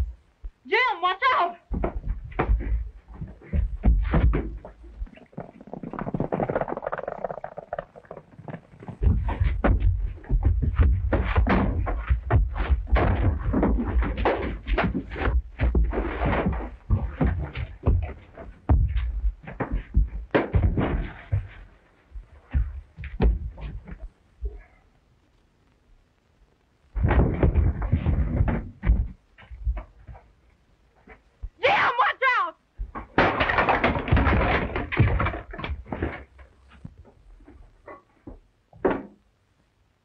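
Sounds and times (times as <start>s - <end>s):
fistfight thuds and knocks: 1.7s - 4.8s, 9.0s - 24.0s, 27.0s - 30.0s, 32.8s - 36.3s
scuffling: 1.7s - 7.5s.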